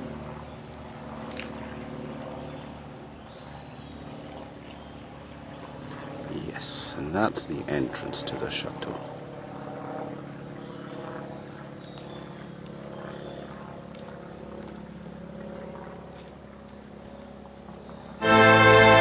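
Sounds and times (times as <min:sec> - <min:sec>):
loud music: 0:18.2 - 0:19.0
music of sustained tones: 0:18.2 - 0:19.0.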